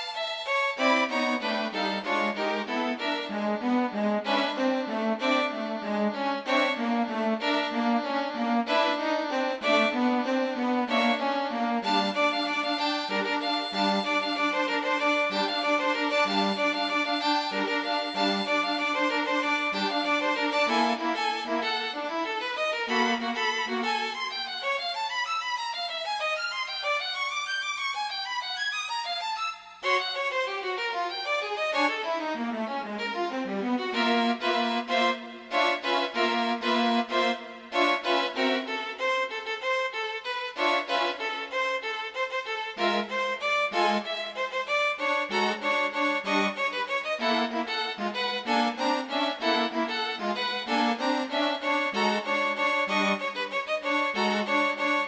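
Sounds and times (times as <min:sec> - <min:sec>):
solo violin playing fast notes: 0:00.0 - 0:55.0.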